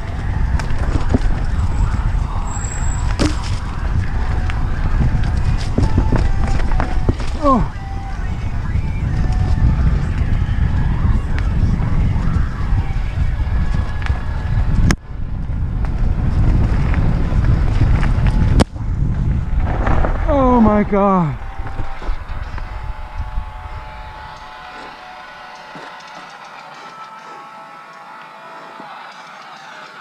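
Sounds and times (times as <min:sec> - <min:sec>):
bike rattling and knocking: 0:00.0 - 0:07.8
wind buffeting microphone: 0:00.0 - 0:25.1
bike tyre rumble: 0:00.0 - 0:26.9
sharp cracks: 0:19.6 - 0:22.7.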